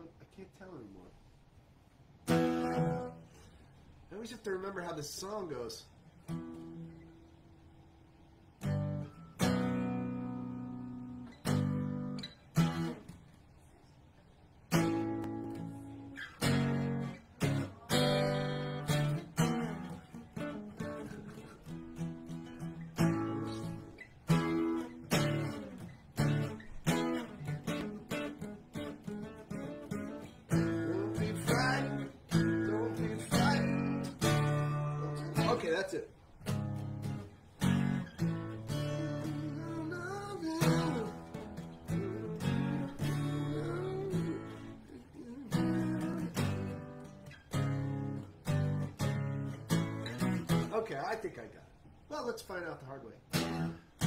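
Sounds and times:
acoustic guitar strummed: 2.2 - 3.6, 6.2 - 7.4, 8.2 - 13.2, 14.6 - 51.2, 53.3 - 54.0.

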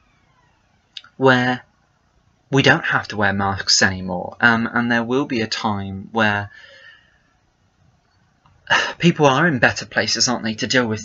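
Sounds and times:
man breathing or speaking sharply: 8.7 - 9.0.

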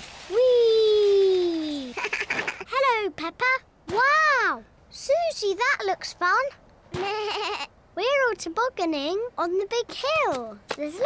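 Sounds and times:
girl giggling: 7.0 - 7.7.

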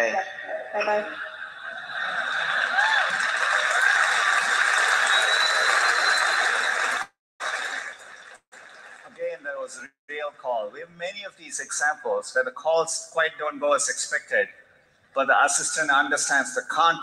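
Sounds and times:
cheers: 1.8 - 9.0
audience applauding: 1.8 - 9.1.

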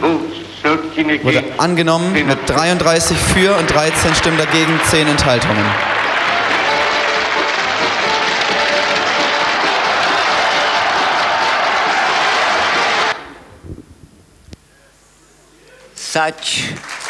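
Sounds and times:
crowd applause: 1.9 - 13.4, 16.7 - 17.0.

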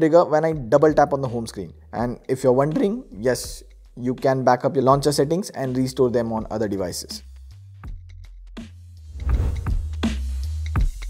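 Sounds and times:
swooshing transition effects: 9.1 - 10.0.

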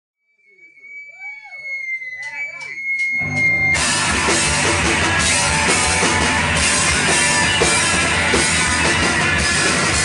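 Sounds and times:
amplifier feedback whine: 0.4 - 5.8
rock band playing loudly: 3.1 - 10.0.

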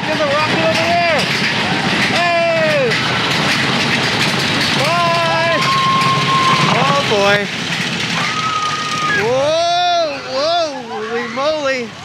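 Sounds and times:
roller coaster rumble and clatter: 0.0 - 12.0.

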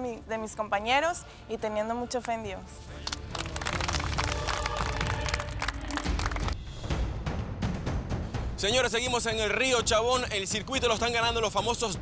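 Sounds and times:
background music: 0.0 - 12.0
people clapping: 3.0 - 6.6.

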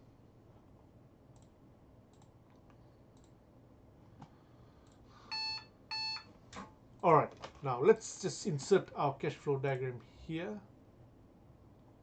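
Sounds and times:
computer clicks: 1.3 - 3.4.

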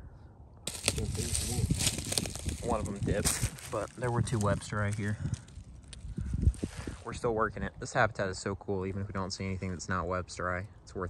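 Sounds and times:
footsteps on forest floor: 0.7 - 7.1.

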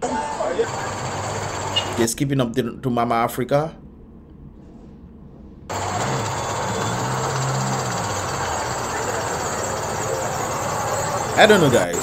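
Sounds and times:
vehicle engine running: 0.0 - 2.1, 5.7 - 12.0
town street noise: 0.0 - 2.4, 5.7 - 12.0.

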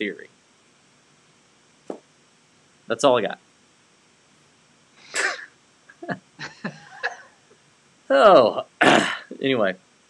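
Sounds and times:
man's stifled laughter: 5.2 - 7.4.

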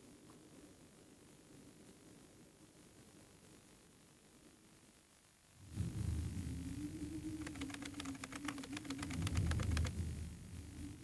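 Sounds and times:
low humming tone: 5.6 - 11.0
rapid sharp clicks: 7.2 - 10.0.

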